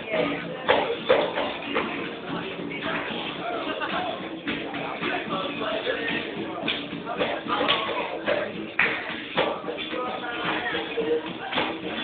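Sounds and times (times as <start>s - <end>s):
percussion beat: 0.0s - 12.0s.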